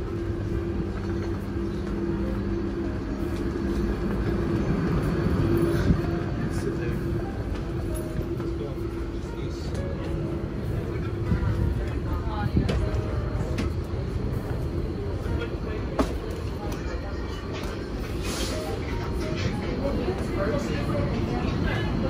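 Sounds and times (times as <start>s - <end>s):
train carriage rumble: 0.0s - 22.0s.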